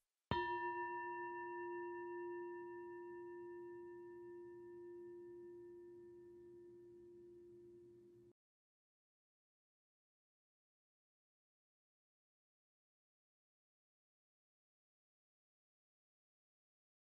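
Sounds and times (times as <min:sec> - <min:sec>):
meditation bell ringing: 0:00.3 - 0:07.9.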